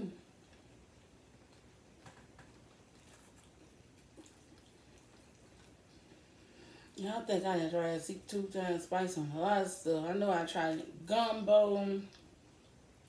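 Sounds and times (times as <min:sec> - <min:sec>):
faint chewing: 0:00.0 - 0:07.0, 0:12.0 - 0:13.0.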